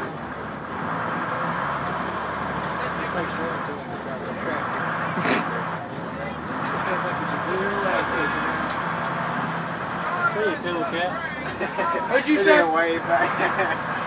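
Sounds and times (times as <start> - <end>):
diesel bus engine idling: 0.0 - 14.0.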